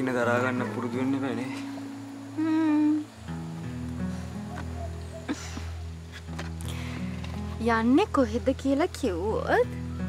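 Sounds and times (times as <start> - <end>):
guitar background music: 0.0 - 10.0
person humming: 2.4 - 3.1.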